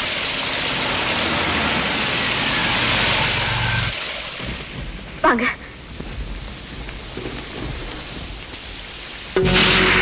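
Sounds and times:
rain hissing: 0.0s - 10.0s.

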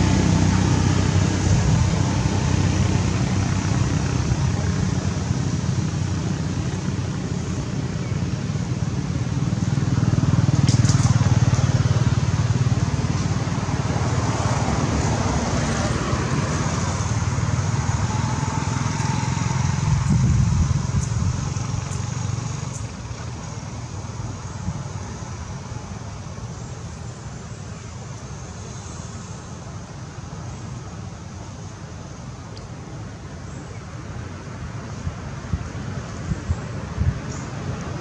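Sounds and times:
vehicle engine running: 0.0s - 27.4s.

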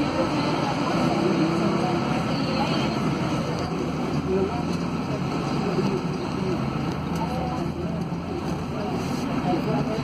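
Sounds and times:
bus diesel engine drone: 0.0s - 10.0s
road noise: 0.0s - 10.0s.

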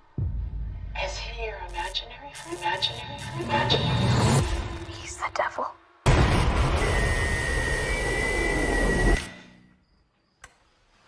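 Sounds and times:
high whine: 6.1s - 9.4s
faint click: 10.4s - 10.6s.

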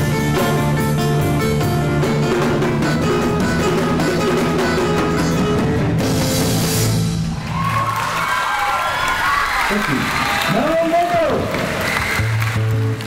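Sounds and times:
rock band playing: 0.0s - 8.2s, 10.5s - 13.0s
audience applauding and cheering: 7.2s - 13.0s
whoops from crowd: 7.4s - 10.8s.

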